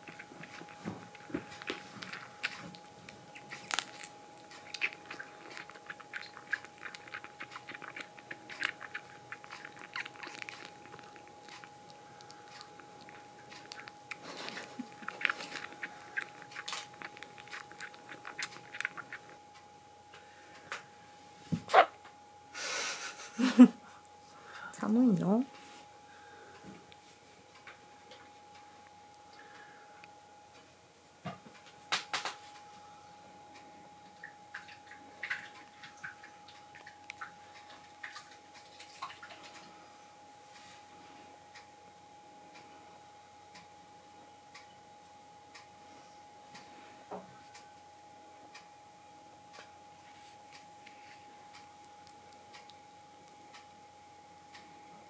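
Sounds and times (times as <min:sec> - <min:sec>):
faint steady hum: 0:00.0 - 0:55.0
kittens rustling on a blanket: 0:50.0 - 0:51.3.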